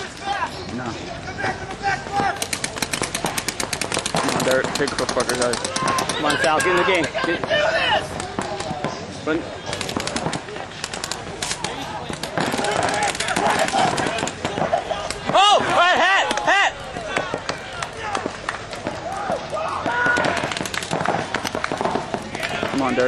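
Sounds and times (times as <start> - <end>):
paintball markers popping: 2.4 - 7.2, 9.7 - 14.5
loud shouts: 5.6 - 8.2, 12.5 - 21.2.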